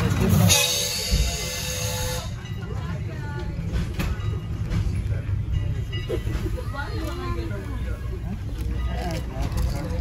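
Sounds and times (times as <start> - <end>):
train coach rumbling on rails: 0.0 - 10.0
steam locomotive whistle: 0.4 - 2.4.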